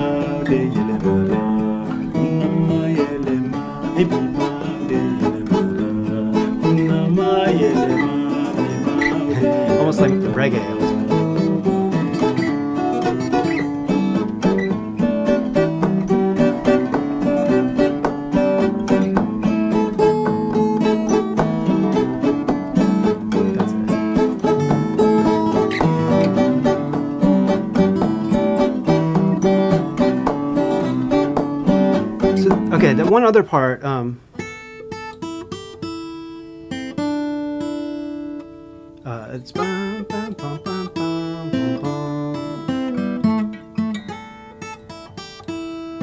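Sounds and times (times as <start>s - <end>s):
man singing: 0.0s - 12.3s, 21.5s - 24.2s, 32.2s - 33.4s, 39.0s - 43.0s
acoustic guitars playing: 0.0s - 46.0s.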